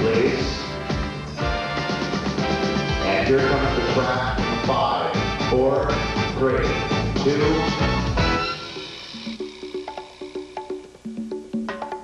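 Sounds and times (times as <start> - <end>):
conga drums played by hand: 8.0 - 12.0.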